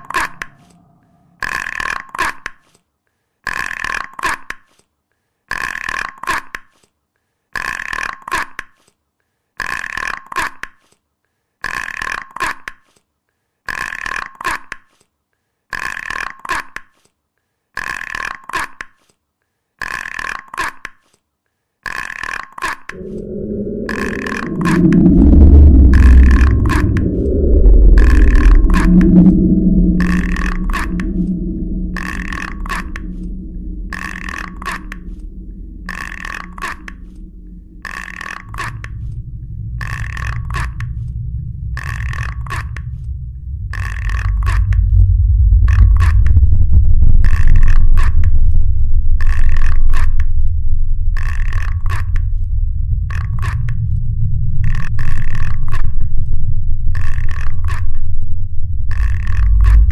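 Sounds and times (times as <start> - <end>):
low rumbling: 0.0 - 1.8, 22.9 - 59.9.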